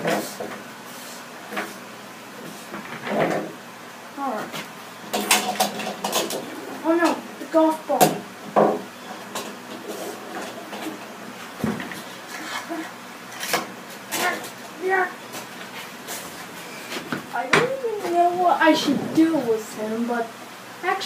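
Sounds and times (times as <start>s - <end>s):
person speaking: 6.7s - 8.2s, 17.3s - 21.0s.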